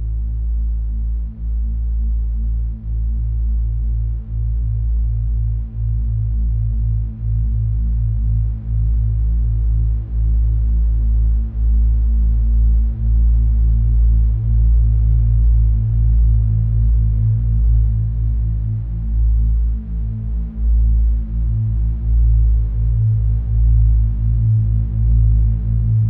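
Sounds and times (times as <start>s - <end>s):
deep pulsing drone: 0.0s - 26.0s.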